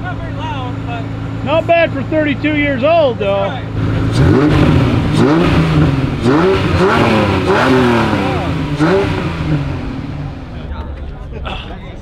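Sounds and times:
car engine revving: 0.0 - 10.8.

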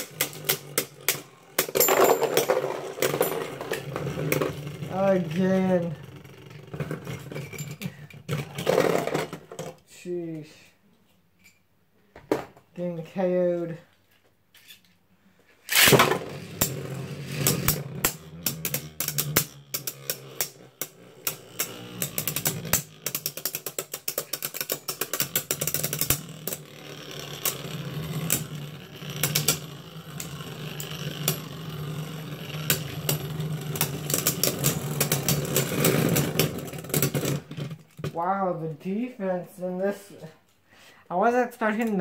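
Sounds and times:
spinning tops clicking and scraping: 0.0 - 9.3, 15.7 - 37.5
spinning tops whirring: 15.7 - 37.5.

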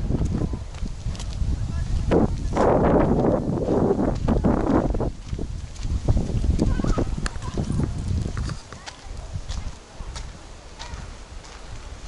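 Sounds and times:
footsteps on dirt path: 0.0 - 12.0
wind rumbling on microphone: 0.0 - 12.0.

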